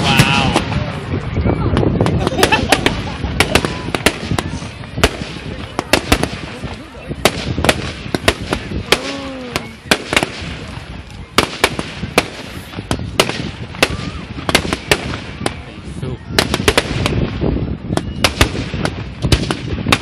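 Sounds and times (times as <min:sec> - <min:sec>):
fireworks bangs and crackles: 0:00.0 - 0:20.0.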